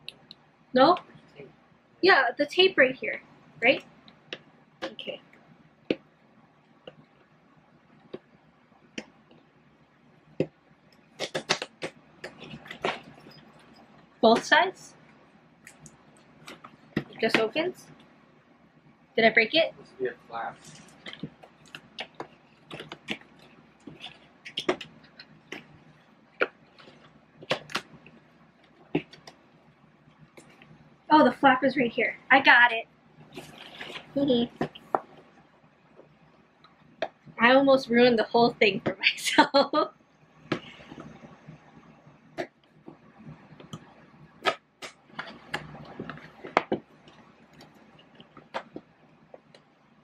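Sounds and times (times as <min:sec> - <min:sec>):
sharp cardboard snaps: 0:11.2 - 0:13.0.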